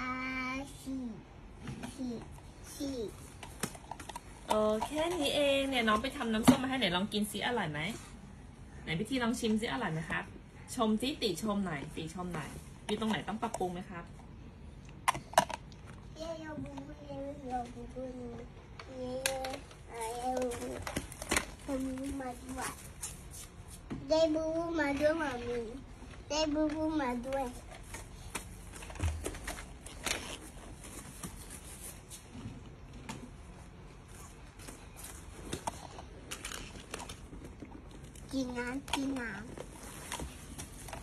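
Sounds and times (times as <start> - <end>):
child speaking: 0.0 - 1.3, 1.9 - 3.2, 16.2 - 20.9, 21.7 - 22.8, 24.0 - 27.6, 38.3 - 39.5
toddler voice sounds: 0.0 - 1.3, 1.9 - 3.2
faint shuffling and handling: 16.2 - 41.0.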